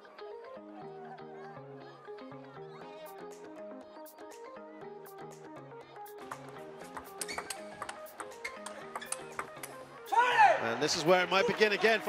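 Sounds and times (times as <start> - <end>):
background music: 0.0 - 12.0
table tennis ball clicks: 7.0 - 9.8.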